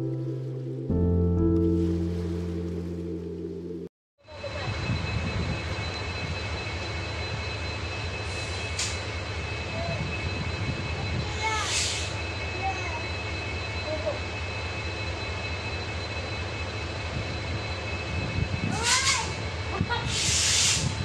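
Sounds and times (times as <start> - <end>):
diesel train engine idling: 4.2 - 21.0
brief hiss: 20.1 - 20.9.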